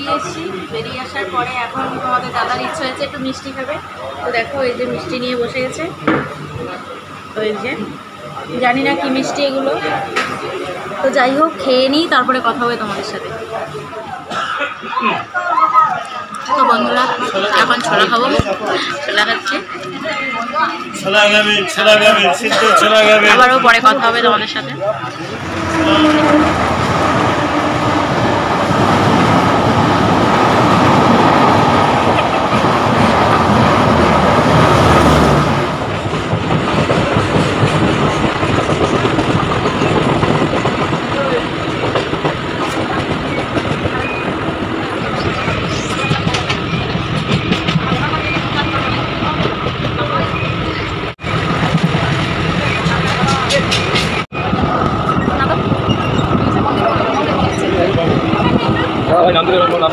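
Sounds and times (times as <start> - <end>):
passenger train running past: 0.0 - 59.9
running noise inside moving train: 0.0 - 59.9.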